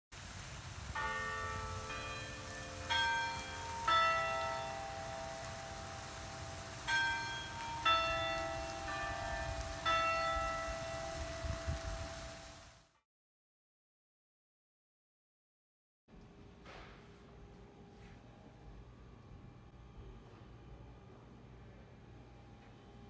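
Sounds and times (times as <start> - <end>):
tower bells chiming melody: 1.0 - 12.6.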